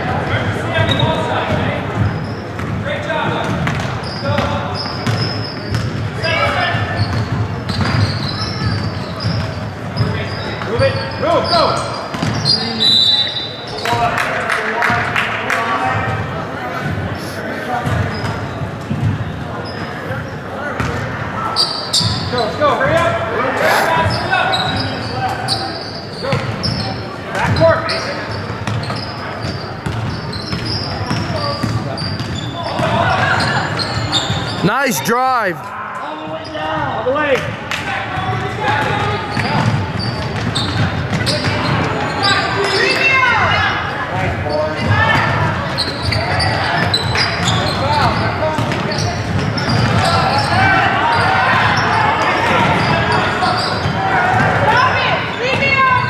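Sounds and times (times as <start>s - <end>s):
sneakers squeaking on court: 3.5s - 6.0s, 7.0s - 10.5s
people calling out: 34.6s - 35.7s.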